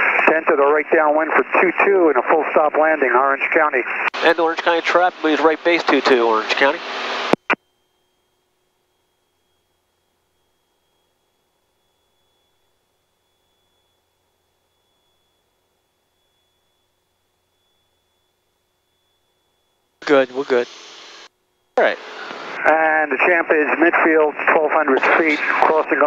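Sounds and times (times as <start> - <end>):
faint low hum: 7.5 - 26.0.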